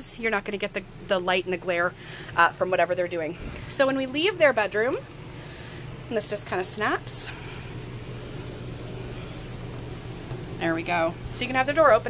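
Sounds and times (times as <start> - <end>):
low hum: 0.7 - 12.0.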